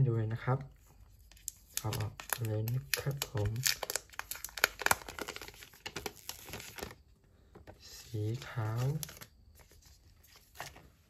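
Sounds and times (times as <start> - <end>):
plastic wrapping crinkling: 1.1 - 7.0, 8.3 - 10.9.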